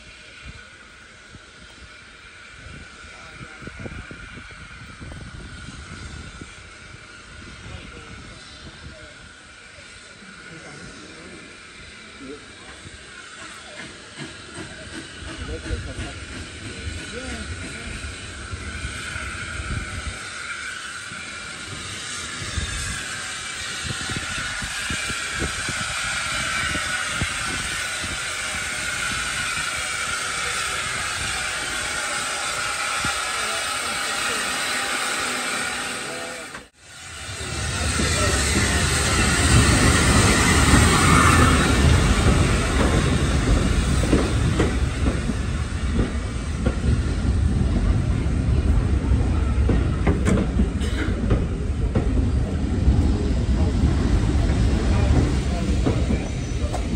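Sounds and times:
steam hissing: 0.0 - 56.9
train wheels rumbling and clattering: 12.6 - 56.9.

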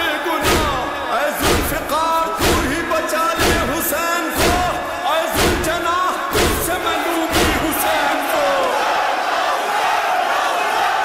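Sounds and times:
men chanting together: 0.0 - 11.0
heavy thump: 0.4 - 2.8, 3.4 - 3.8, 4.4 - 7.8.

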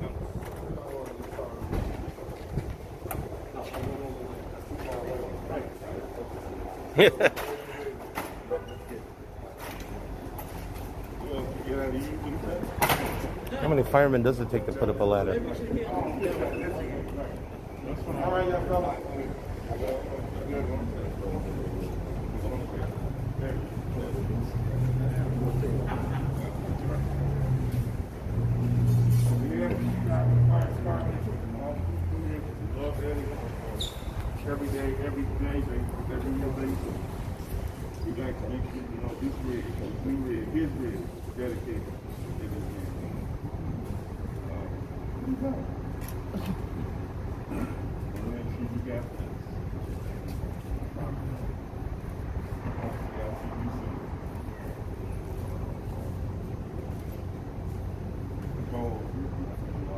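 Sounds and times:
crowd chatter: 0.0 - 59.9
people talking in background: 0.0 - 59.9.

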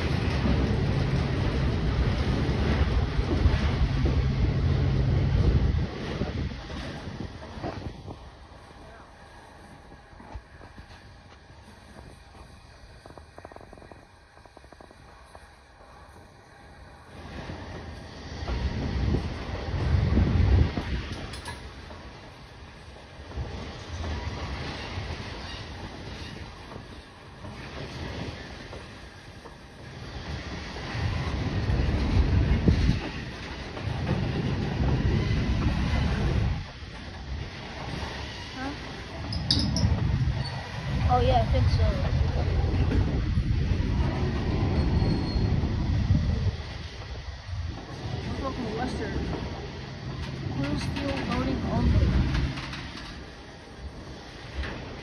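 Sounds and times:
freight train cars rolling on rails: 0.0 - 55.0.

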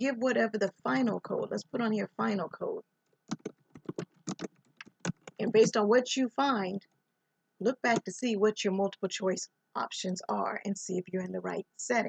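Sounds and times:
computer keyboard typing: 3.3 - 5.8.

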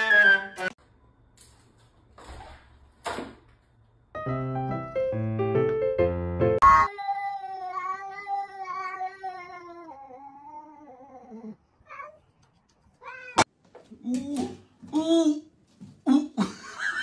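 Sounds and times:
piano music: 4.2 - 6.9.

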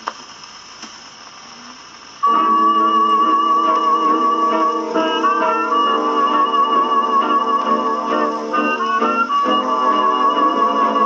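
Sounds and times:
record crackling clicks: 0.0 - 1.4
record surface hiss: 0.0 - 11.0.

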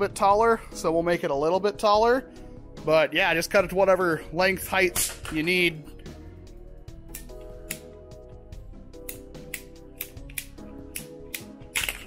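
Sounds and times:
background music: 0.0 - 12.0
pipe cutter clicking: 7.1 - 7.9, 9.0 - 12.0.

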